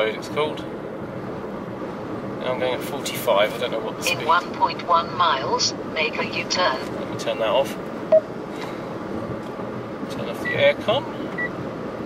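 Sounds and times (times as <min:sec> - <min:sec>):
road and engine noise in a car: 0:00.0 - 0:12.0.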